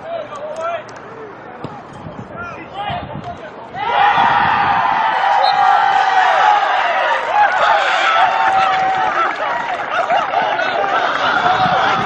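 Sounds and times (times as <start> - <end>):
players shouting: 3.7 - 12.0.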